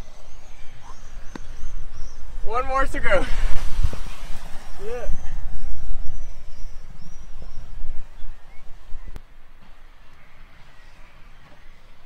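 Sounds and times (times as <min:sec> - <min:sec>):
outdoor hiss: 0:00.0 - 0:05.2
wind rumbling on microphone: 0:00.0 - 0:12.0.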